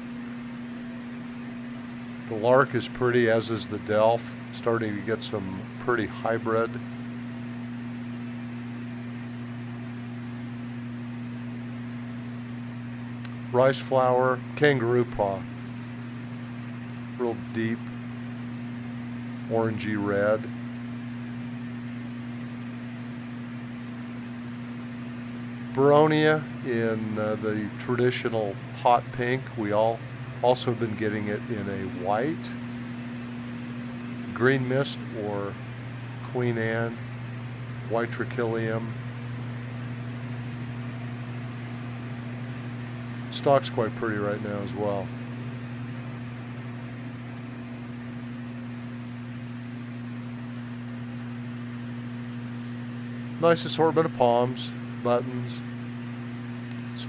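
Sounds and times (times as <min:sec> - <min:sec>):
refrigeration fans humming: 0:00.0 - 0:57.0.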